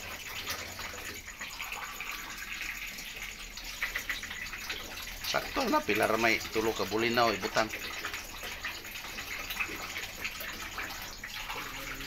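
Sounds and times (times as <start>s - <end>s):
sauce simmering in a wok: 0.0s - 12.0s.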